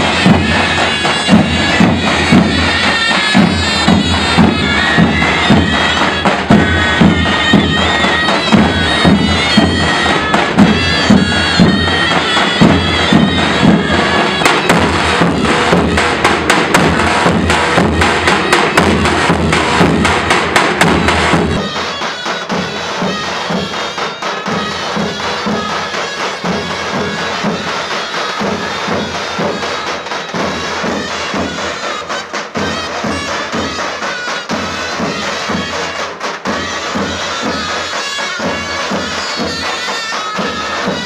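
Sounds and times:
rhythmic drumbeats: 0:00.0 - 0:41.0
shawm melody: 0:00.0 - 0:41.0.

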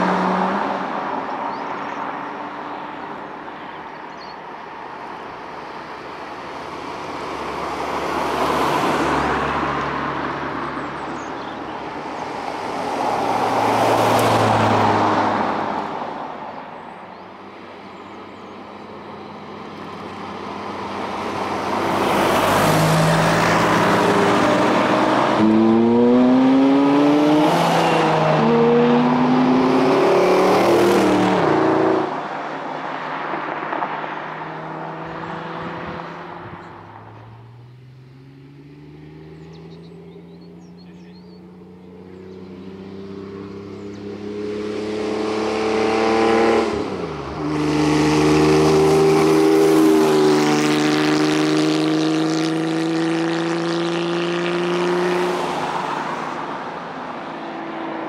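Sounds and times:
car engine approaching: 0:00.0 - 0:58.0
sports car engines accelerating: 0:00.0 - 0:58.0.

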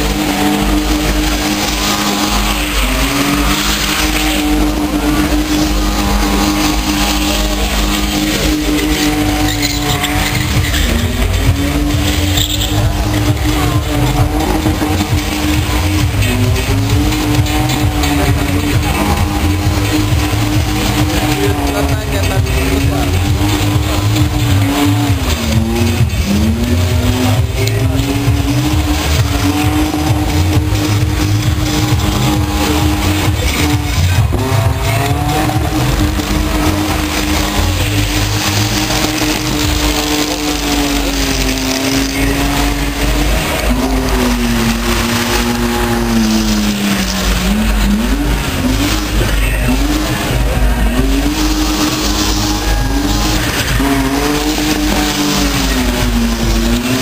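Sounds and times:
car engine at high revs: 0:00.0 - 0:57.0
tyres screeching: 0:00.0 - 0:57.0.

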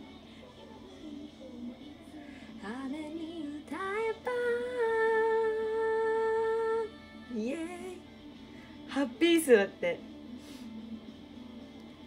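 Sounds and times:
pop music from a tv: 0:00.0 - 0:12.0.

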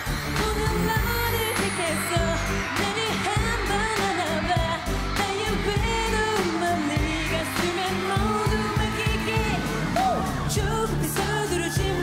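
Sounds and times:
pop backing music with beat: 0:00.0 - 0:12.0
woman singing: 0:00.3 - 0:12.0.

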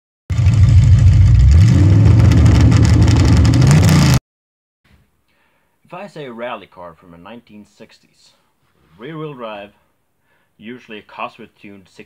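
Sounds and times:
car engine revving: 0:00.3 - 0:04.2.

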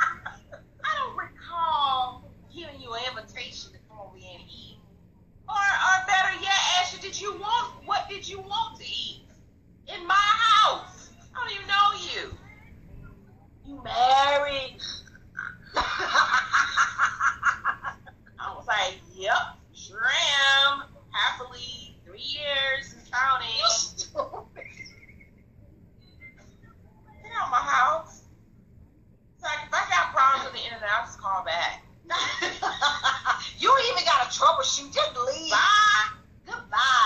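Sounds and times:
woman laughing: 0:00.0 - 0:01.0, 0:14.8 - 0:18.4, 0:23.6 - 0:25.2, 0:32.1 - 0:33.6.

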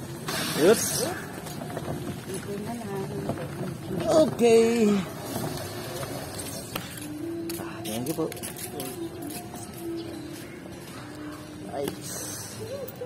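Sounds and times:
people's voices in the street: 0:00.0 - 0:13.0.

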